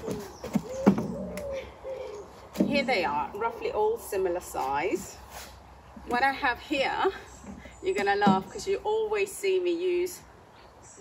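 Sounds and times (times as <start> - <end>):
footsteps on wooden planks: 0.0 - 1.4
bird calling: 0.0 - 3.8.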